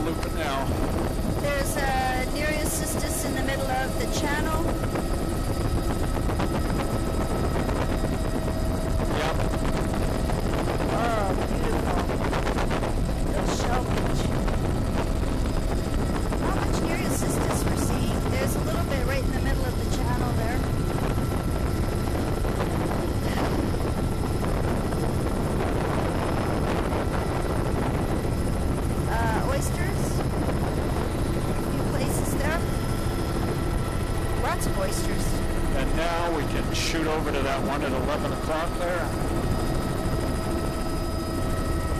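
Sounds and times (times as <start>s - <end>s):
helicopter rotor and engine drone: 0.0s - 41.9s.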